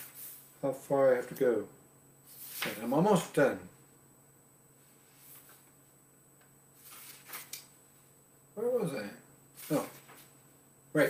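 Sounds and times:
book pages rustling: 2.4s - 2.9s, 6.8s - 7.7s.

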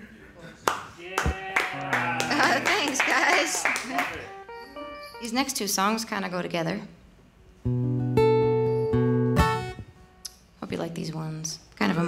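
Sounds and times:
pedal steel guitar notes: 4.2s - 5.4s, 7.6s - 10.0s
acoustic guitar notes: 7.6s - 10.3s.

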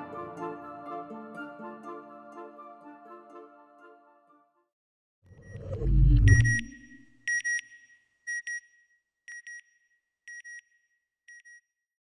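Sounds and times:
short high electronic beeps: 5.4s - 7.0s.

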